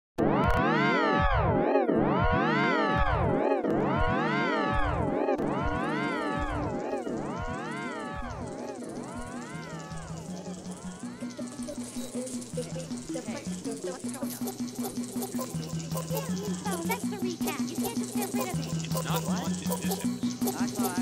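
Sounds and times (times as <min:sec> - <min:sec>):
warbling swooping tone: 0:02.4 - 0:21.0.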